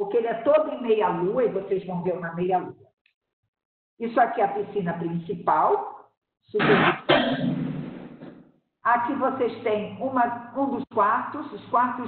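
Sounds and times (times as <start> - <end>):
person coughing: 6.6 - 7.7.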